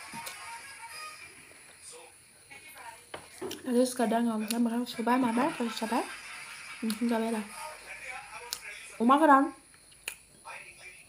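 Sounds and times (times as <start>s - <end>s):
person chewing: 9.8s - 10.2s.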